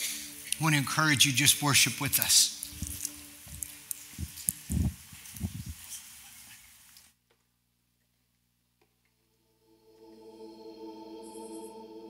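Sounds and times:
faint sustained musical notes: 0.0s - 4.8s, 9.5s - 12.0s.

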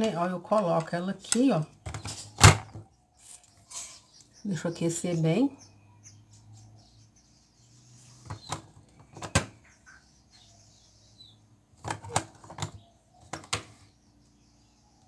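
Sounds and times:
plastic handle clicks and knocks: 8.3s - 9.5s, 11.8s - 13.7s.

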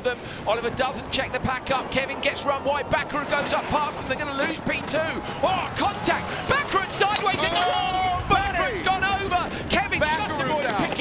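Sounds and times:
man commentating excitedly: 0.0s - 11.0s.

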